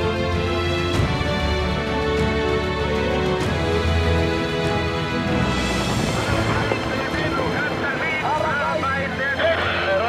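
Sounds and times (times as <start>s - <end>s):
man's voice over radio: 6.2s - 10.0s.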